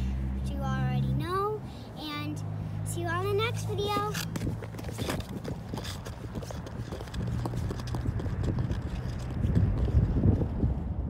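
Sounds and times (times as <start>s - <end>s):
low steady rumble: 0.0s - 11.0s
ice skates scraping on ice: 3.4s - 10.7s.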